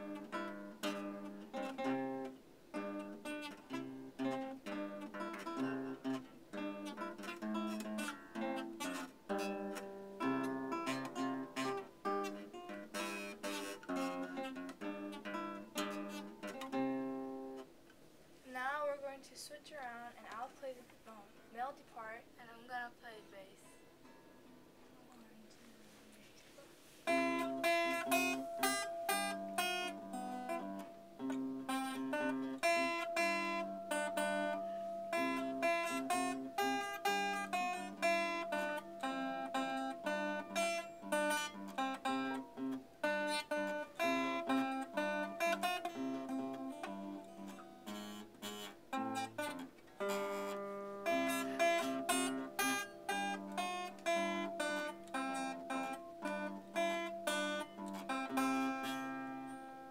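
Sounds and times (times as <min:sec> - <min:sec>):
acoustic guitar duet: 0:00.0 - 0:59.9.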